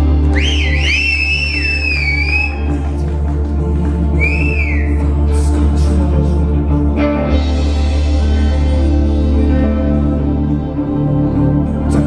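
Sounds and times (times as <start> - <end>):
high sliding whistle-like melody: 0.3 - 3.0, 4.2 - 5.0.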